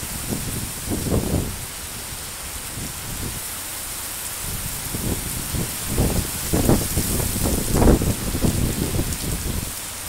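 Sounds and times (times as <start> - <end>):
wind gusts buffeting microphone: 0.0 - 9.8
heavy rain falling: 0.0 - 10.0.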